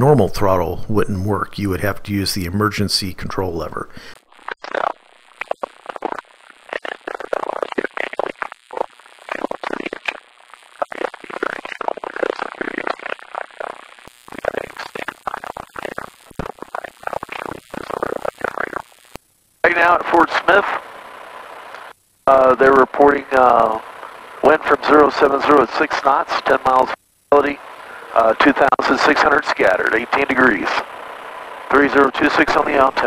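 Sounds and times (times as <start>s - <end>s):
voices over radio feed: 0.0s - 10.1s, 14.3s - 18.8s, 19.6s - 33.0s.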